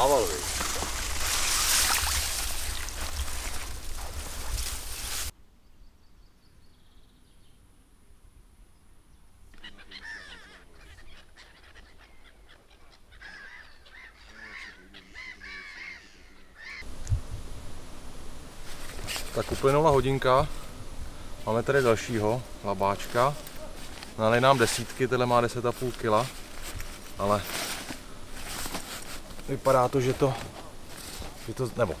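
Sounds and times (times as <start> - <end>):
gulls calling: 9.5 - 17.0.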